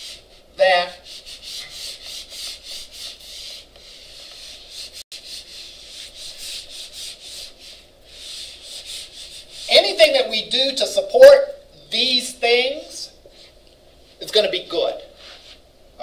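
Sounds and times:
eraser wiping whiteboard: 0.0s - 10.3s.

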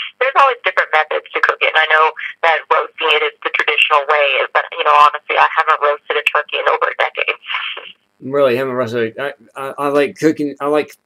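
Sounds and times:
person talking over telephone: 0.0s - 10.9s.

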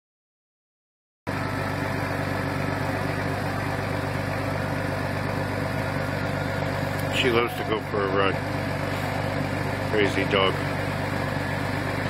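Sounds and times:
vehicle engine idling: 1.3s - 12.0s.

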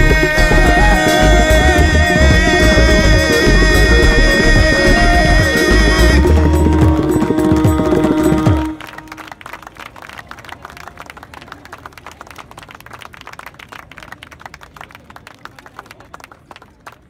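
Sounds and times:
audience applauding: 0.0s - 17.0s.

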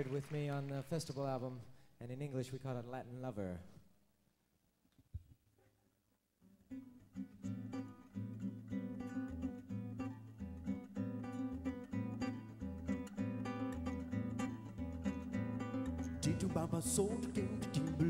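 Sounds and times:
acoustic guitar strumming: 6.7s - 18.0s.

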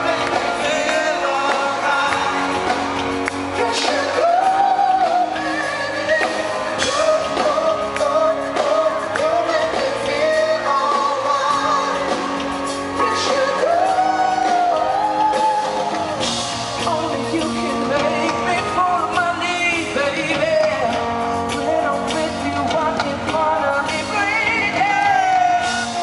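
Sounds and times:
live band playing: 0.0s - 26.0s
man singing into microphone: 0.0s - 26.0s.

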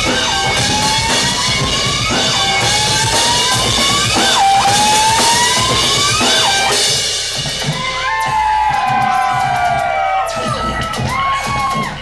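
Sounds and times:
audience cheering and whooping: 0.0s - 6.9s, 7.6s - 12.0s
electronic dance music: 0.0s - 12.0s.

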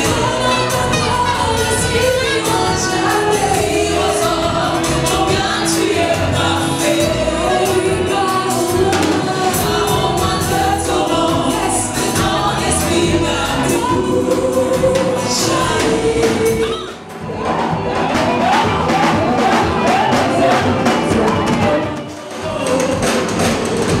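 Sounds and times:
bass: 0.0s - 24.0s
steady drum beat: 0.0s - 24.0s
women singing gospel: 0.0s - 24.0s.

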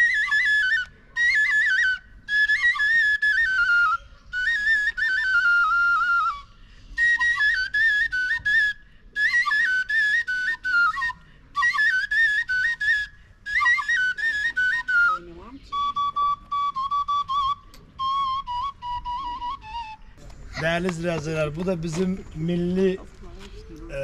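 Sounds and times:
wooden shepherd's pipe melody: 0.0s - 24.0s.

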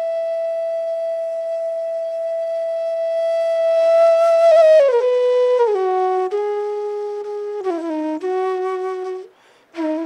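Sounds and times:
bamboo flute long note: 0.0s - 10.0s.

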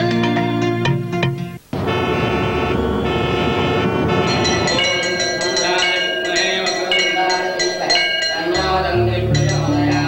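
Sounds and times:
sustained tones: 1.7s - 10.0s
bells chiming: 4.1s - 10.0s.

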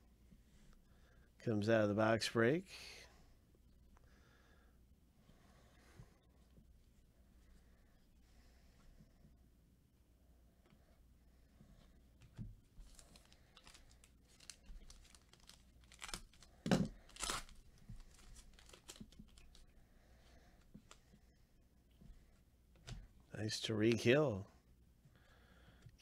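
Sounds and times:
wrapper crinkling: 12.8s - 19.6s
wrapper ripping: 12.8s - 19.6s.

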